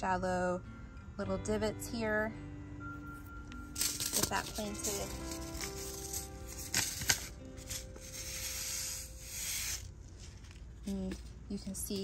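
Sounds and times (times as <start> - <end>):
soft background music: 0.0 - 12.0
handling noise: 3.7 - 8.4
seeds shaken from paper packet: 3.8 - 12.0.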